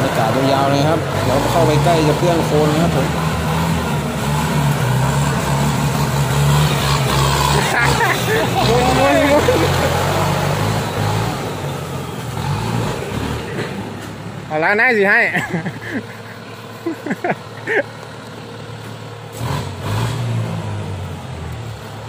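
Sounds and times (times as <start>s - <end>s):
tractor diesel engine running: 0.0s - 19.5s.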